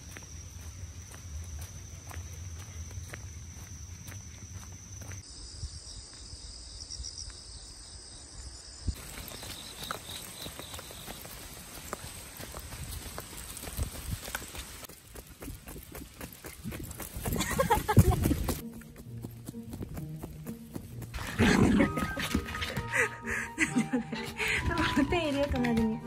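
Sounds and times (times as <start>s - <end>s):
footsteps on wet pavement: 0.0s - 5.2s, 9.0s - 26.0s
high-pitched insect song: 0.0s - 14.6s.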